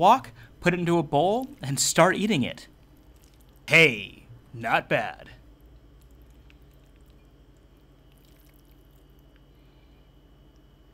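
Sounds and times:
faint high whine: 0.0s - 10.9s
low hum: 0.0s - 10.9s.

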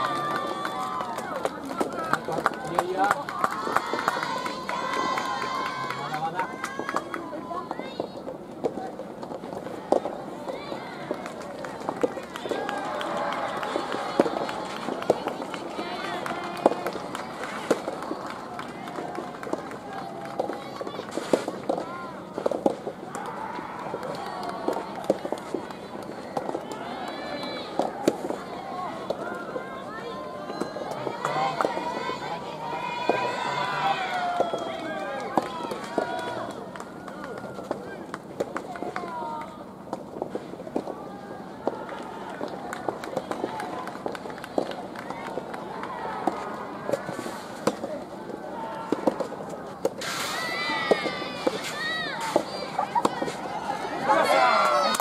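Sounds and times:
rackets hitting rubber ball: 48.9s - 50.1s.

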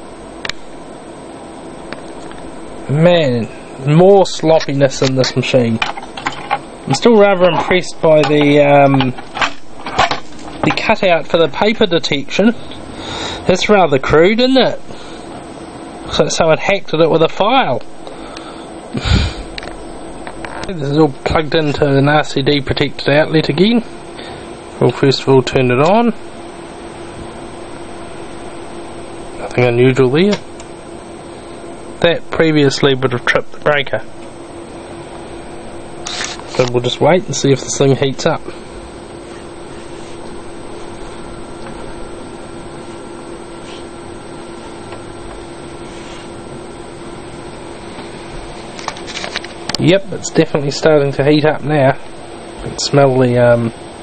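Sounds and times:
laminator humming: 0.0s - 54.0s
even hiss: 16.2s - 19.7s
person sniffing: 18.2s - 19.6s.

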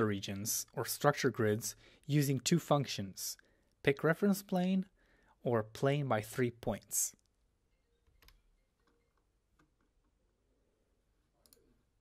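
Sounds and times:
computer mouse clicks: 8.1s - 10.2s, 11.4s - 11.8s.

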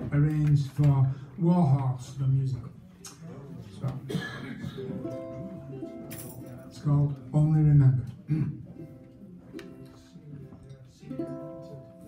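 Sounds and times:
ukulele chords played softly: 4.9s - 6.8s, 8.8s - 10.2s, 10.8s - 12.0s.

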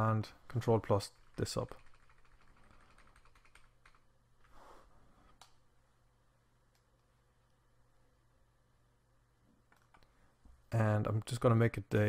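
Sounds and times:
low steady hum: 0.0s - 12.0s
keyboard keys tapping: 1.2s - 4.0s.

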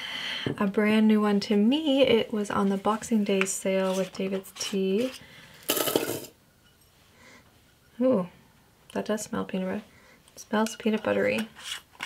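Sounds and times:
metal tin scrape and clink: 4.6s - 6.8s.

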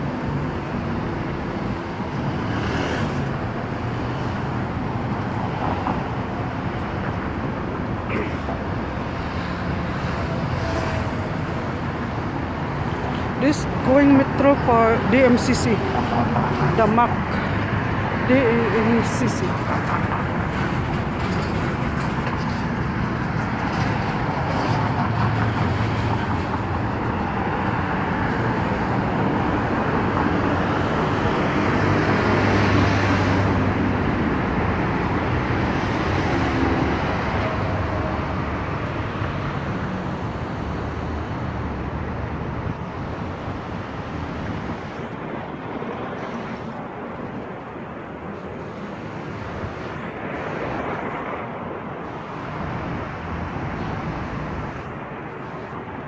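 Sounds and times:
cars passing: 0.0s - 56.0s.

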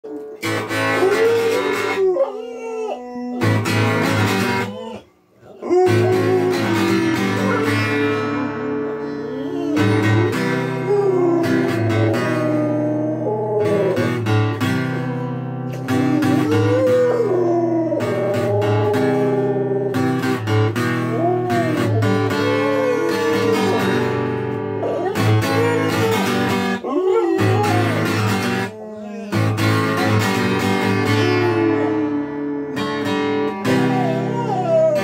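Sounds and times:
dog howling: 0.1s - 8.7s, 9.3s - 14.2s, 15.9s - 20.4s, 21.0s - 32.5s, 33.6s - 35.0s
loud guitar strumming: 0.4s - 2.0s, 3.4s - 4.8s, 5.8s - 9.0s, 9.8s - 35.0s.

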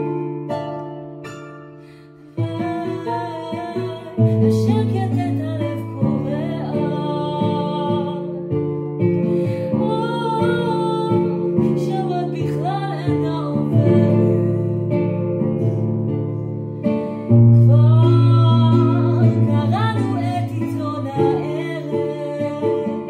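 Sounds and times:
woman singing: 2.0s - 15.4s, 17.1s - 23.0s.

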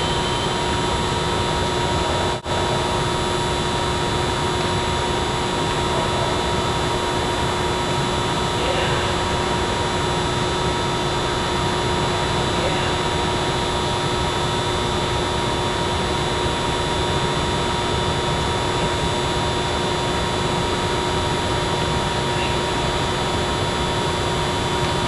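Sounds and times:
constant humming tones: 0.0s - 25.0s.

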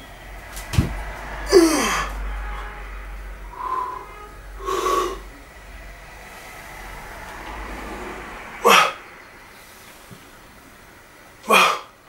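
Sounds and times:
low background noise: 0.0s - 12.0s
man breathing forcefully through nose: 3.4s - 9.0s.

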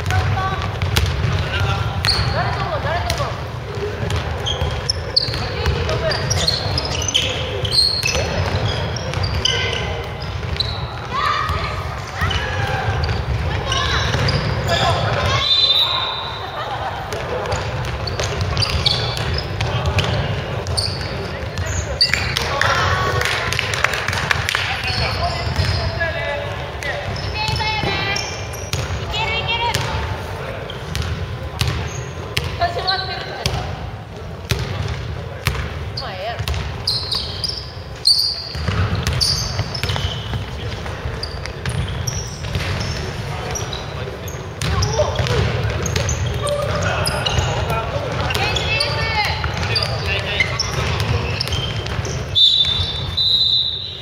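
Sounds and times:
players shouting: 1.4s - 23.7s
basketball bouncing on hardwood: 25.4s - 25.8s, 36.4s - 36.7s, 38.5s - 40.1s.

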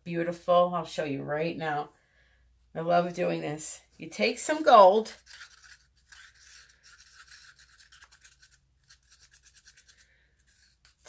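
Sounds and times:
stir stick scraping inside cup: 4.8s - 11.0s.

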